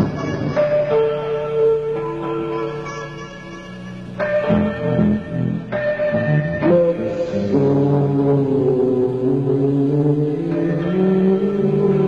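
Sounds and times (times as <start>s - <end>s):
rock band droning chord: 0.0s - 12.0s.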